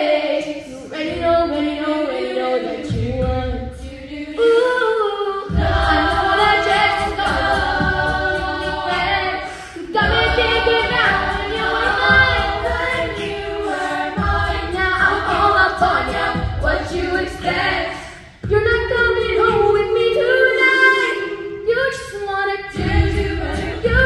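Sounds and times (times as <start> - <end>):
a cappella group singing: 0.0 - 24.0
low pulsing beat: 5.5 - 20.0, 22.8 - 24.0.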